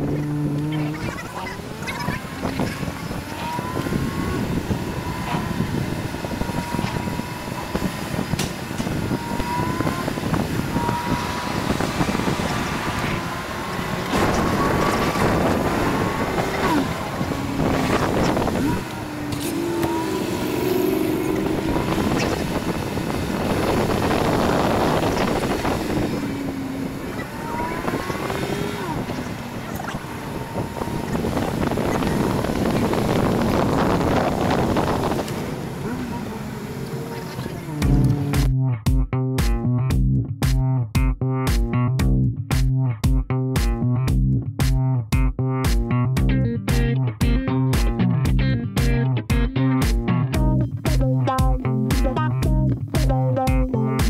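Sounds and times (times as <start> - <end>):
faint voices: 0.0 - 5.7, 26.3 - 38.1
car engines running: 0.0 - 54.0.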